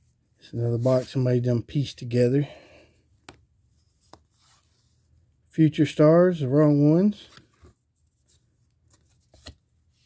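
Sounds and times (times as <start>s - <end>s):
faint clicks of cards handled: 3.2s - 4.6s.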